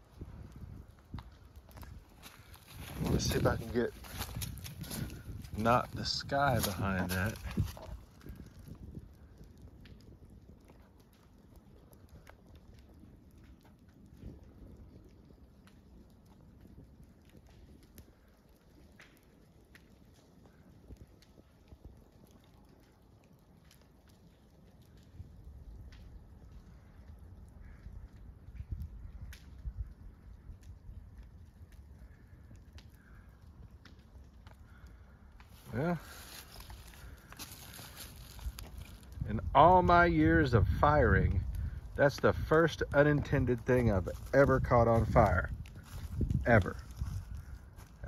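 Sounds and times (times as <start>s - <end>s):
light clicks and crackles: 0.0s - 48.0s.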